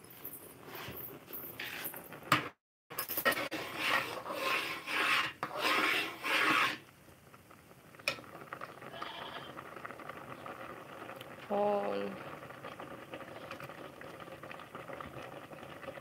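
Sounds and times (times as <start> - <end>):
phone rubbing and scraping: 3.2 - 6.8.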